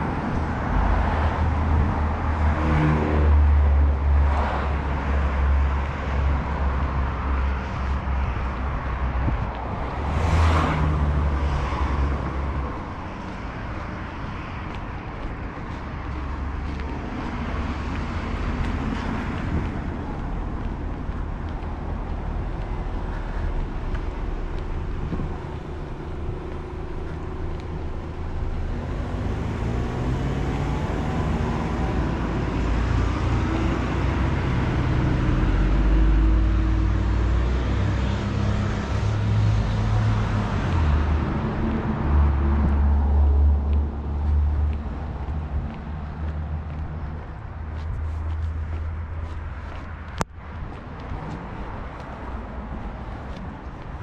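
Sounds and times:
vehicle engine passing by: 0.0s - 13.9s, 21.6s - 49.9s
cars driving past: 0.0s - 54.0s.

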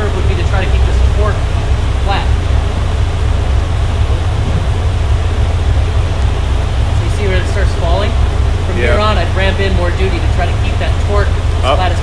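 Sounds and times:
large fans running: 0.0s - 12.0s.

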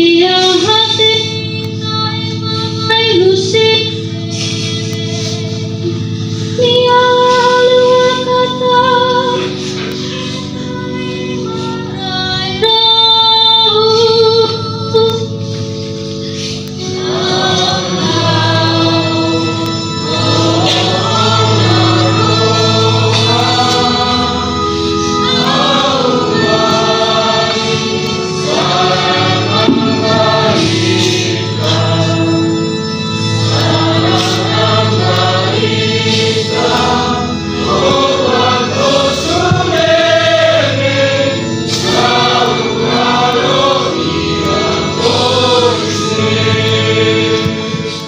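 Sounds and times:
choir singing a slow hymn: 0.0s - 48.0s
held low notes: 17.1s - 48.0s.

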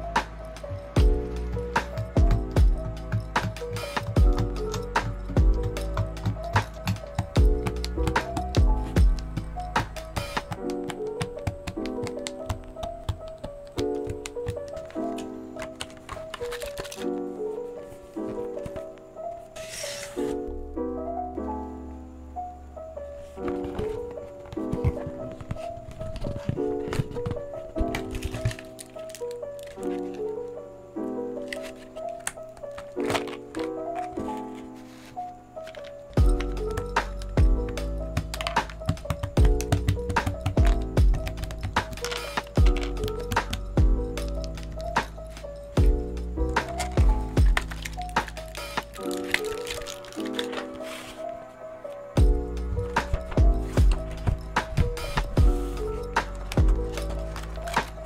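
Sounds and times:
soft piano chords: 0.0s - 58.0s
background music with heavy beat: 0.1s - 10.8s, 52.2s - 58.0s
kick drum: 1.0s - 1.2s, 2.0s - 3.6s, 4.2s - 4.6s, 5.4s - 9.6s, 37.4s - 37.7s, 38.9s - 41.8s, 42.6s - 42.8s, 43.8s - 44.0s, 45.8s - 46.1s, 47.0s - 47.6s, 52.2s - 52.5s, 53.1s - 55.6s, 56.6s - 56.8s.

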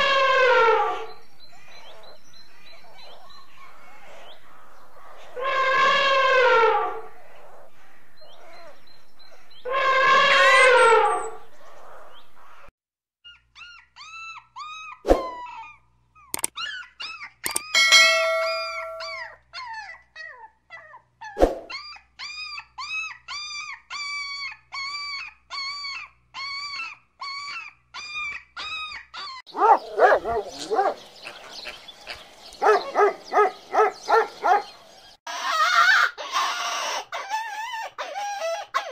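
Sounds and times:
elephant trumpeting: 0.0s - 1.2s, 5.4s - 7.1s, 9.7s - 11.5s
dog whining and howling: 9.7s - 11.4s, 16.5s - 31.4s, 32.6s - 38.9s.

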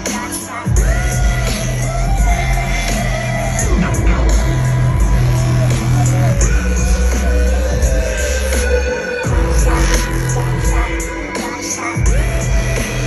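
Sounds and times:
loud dubstep music: 0.0s - 13.0s.

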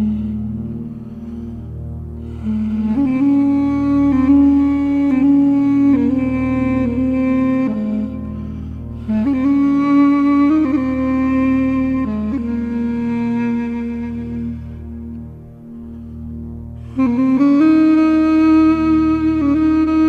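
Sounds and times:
slow melody with held notes: 0.0s - 20.0s.

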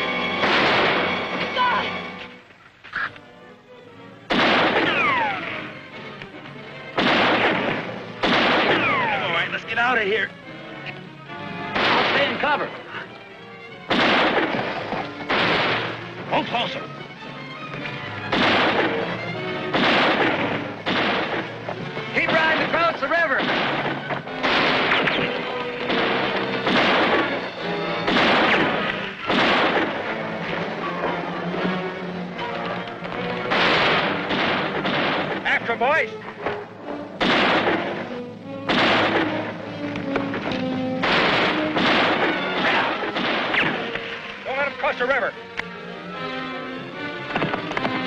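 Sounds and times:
orchestral film score: 0.0s - 48.0s
gunshots with echo: 0.4s - 1.4s, 4.3s - 5.7s, 6.9s - 9.6s, 11.7s - 12.7s, 13.9s - 16.2s, 18.2s - 21.6s, 22.2s - 30.6s, 33.5s - 35.6s, 37.2s - 39.5s, 40.4s - 44.2s.

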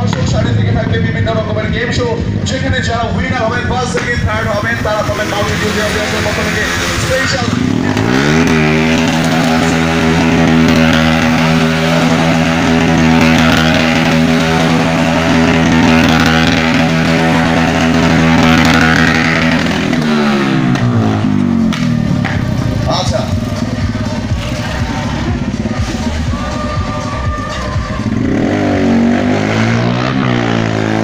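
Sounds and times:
motorcycle engine revving: 0.0s - 31.0s.

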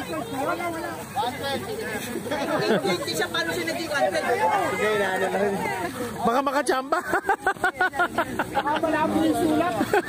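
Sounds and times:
group of people chattering: 0.0s - 10.0s.

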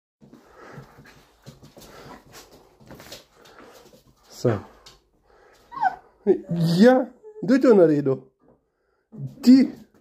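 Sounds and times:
dog panting: 0.3s - 5.9s.

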